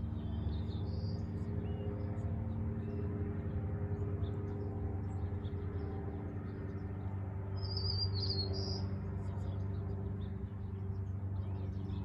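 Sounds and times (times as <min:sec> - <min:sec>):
steady low hum: 0:00.0 - 0:12.0
small bird chirping trill: 0:07.5 - 0:12.0.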